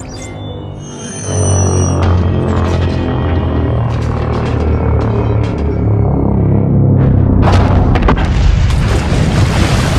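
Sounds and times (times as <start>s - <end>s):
deep rumble: 1.3s - 9.9s.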